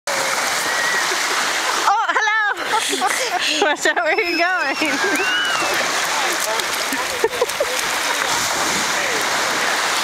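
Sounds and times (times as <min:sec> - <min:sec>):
surf waves washing onto shore: 0:00.1 - 0:10.0
woman speaking: 0:01.9 - 0:05.0.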